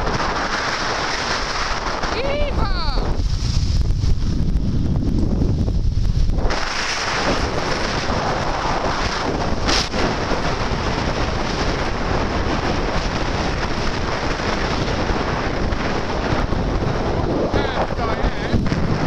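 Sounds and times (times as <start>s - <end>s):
skis hissing on snow: 0.0s - 4.1s, 6.4s - 15.0s
wind buffeting microphone: 0.0s - 19.0s.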